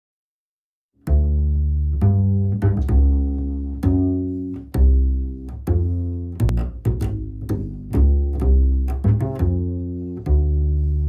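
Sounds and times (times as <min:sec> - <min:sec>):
double bass plucked notes: 0:01.0 - 0:11.0.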